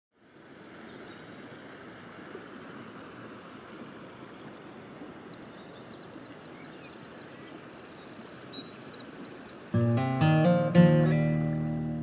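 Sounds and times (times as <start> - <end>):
songbird chirping: 4.2 - 12.0
acoustic guitar chords: 9.7 - 12.0.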